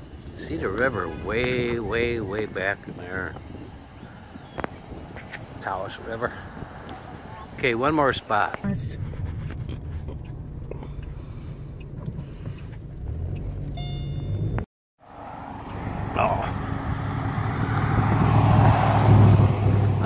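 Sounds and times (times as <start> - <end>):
car engine and tyre rumble: 0.0 - 20.0
vehicle passing alongside: 0.0 - 20.0.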